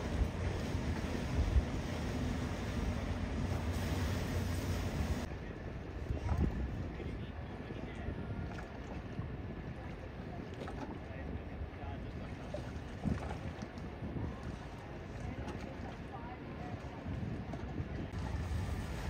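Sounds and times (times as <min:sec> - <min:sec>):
wind on microphone: 0:00.0 - 0:05.3, 0:06.0 - 0:19.0
motor yachts rumbling: 0:00.0 - 0:19.0.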